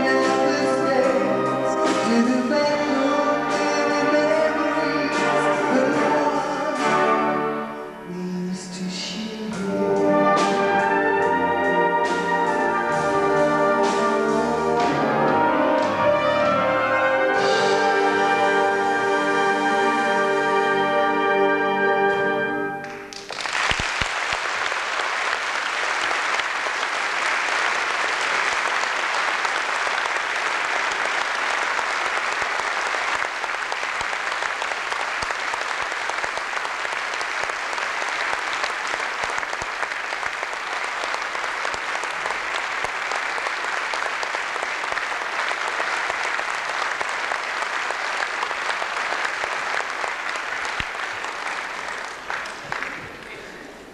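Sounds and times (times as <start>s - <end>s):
audience applauding: 22.8s - 53.9s.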